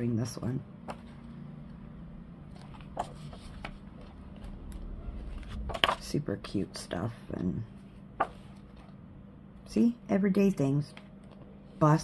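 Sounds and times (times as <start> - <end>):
low steady hum: 0.0 - 12.0
paper page turning: 2.5 - 6.0.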